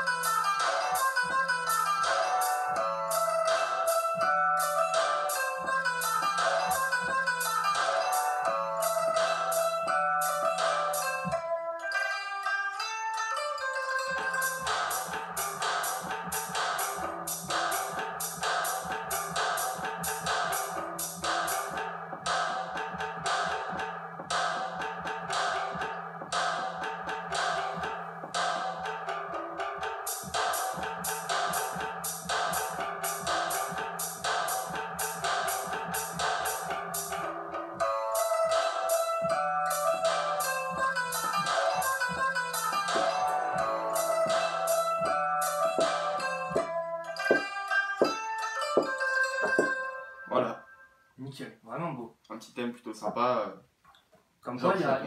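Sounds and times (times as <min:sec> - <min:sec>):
looping melody: 0:00.0 - 0:51.1.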